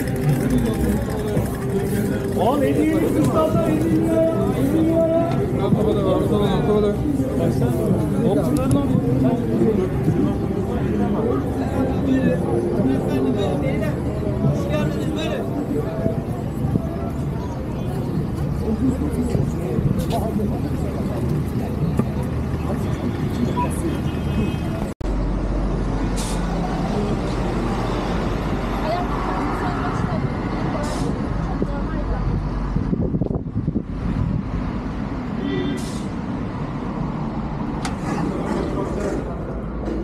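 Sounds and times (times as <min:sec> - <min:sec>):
low rumble of traffic: 0:00.0 - 0:40.0
people's voices: 0:00.0 - 0:40.0
road traffic: 0:00.0 - 0:40.0.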